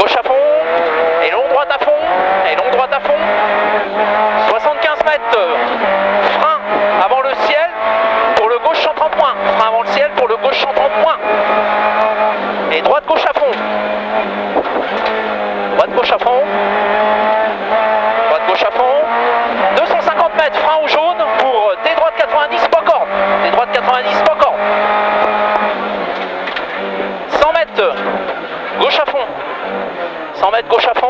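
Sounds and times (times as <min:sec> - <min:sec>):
rally car engine revving: 0:00.0 - 0:31.0.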